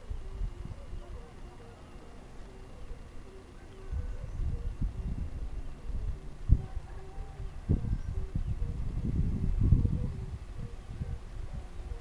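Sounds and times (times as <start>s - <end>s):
wind buffeting microphone: 0.0s - 1.6s, 3.7s - 12.0s.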